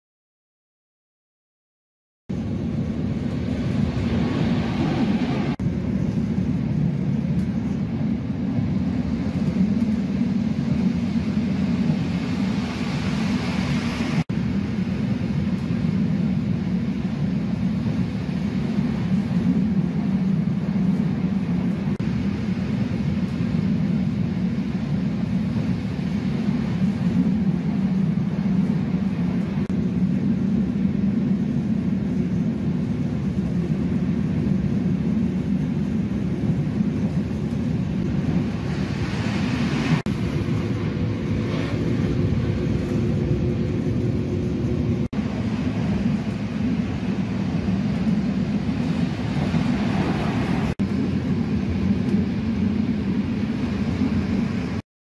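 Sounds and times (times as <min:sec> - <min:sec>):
train rumble inside carriage: 0:02.3 - 0:54.8.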